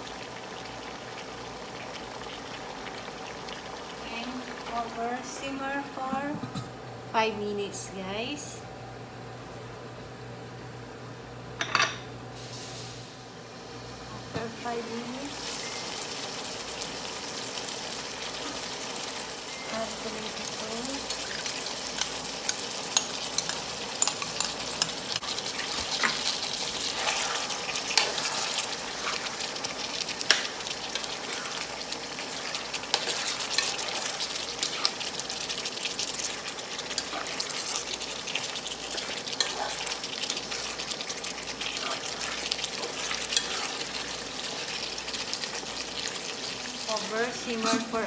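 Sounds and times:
stew sizzling in a wok: 0:00.0 - 0:06.3, 0:11.7 - 0:48.0.

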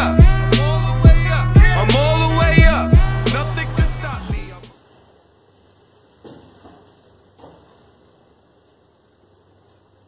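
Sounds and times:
soft thuds and rustles: 0:06.1 - 0:08.0.

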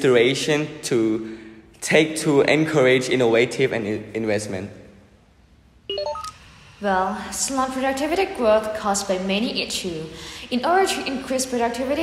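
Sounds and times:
rising electronic beeps: 0:05.9 - 0:06.4.

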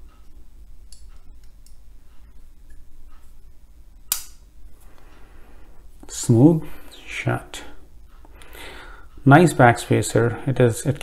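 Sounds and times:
folding knife blade snapping shut: 0:04.1 - 0:04.4.

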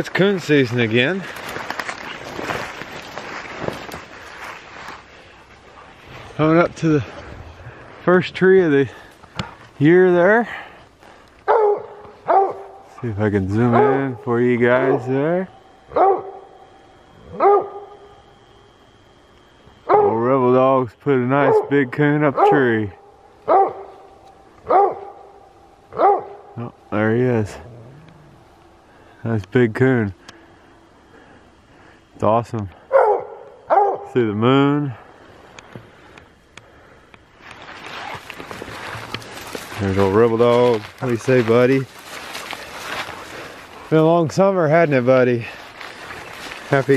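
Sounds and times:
footsteps rustling through leaves: 0:00.3 - 0:08.1, 0:37.4 - 0:46.9
twigs snapping: 0:00.9 - 0:05.0, 0:37.4 - 0:43.8
dog barking: 0:11.4 - 0:12.8, 0:13.7 - 0:14.2, 0:14.8 - 0:15.1, 0:15.9 - 0:16.5, 0:17.3 - 0:18.0, 0:19.9 - 0:20.2, 0:21.4 - 0:21.8, 0:22.4 - 0:22.7, 0:23.5 - 0:26.6, 0:32.9 - 0:34.2.

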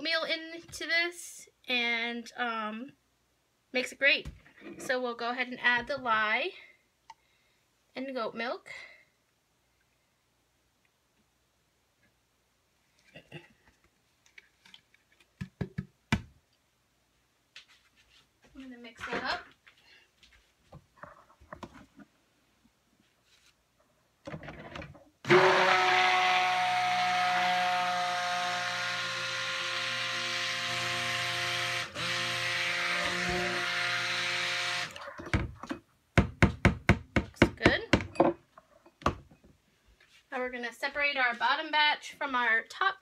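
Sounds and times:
stick blender running: 0:25.3 - 0:35.0.

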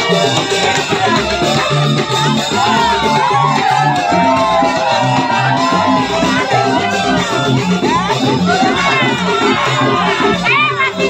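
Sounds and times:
crowd shouting and cheering: 0:00.0 - 0:11.0
dance music with bass line: 0:00.0 - 0:11.0.

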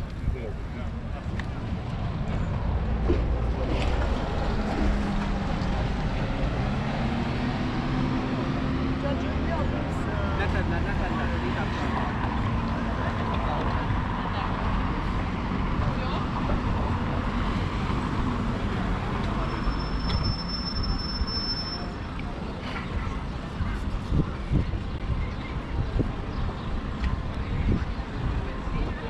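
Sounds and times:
road traffic: 0:00.0 - 0:29.0
voices of passers-by: 0:00.0 - 0:29.0.

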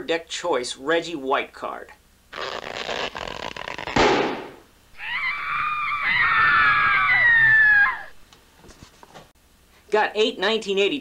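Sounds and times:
high wavering scream-like cry: 0:05.0 - 0:08.2.

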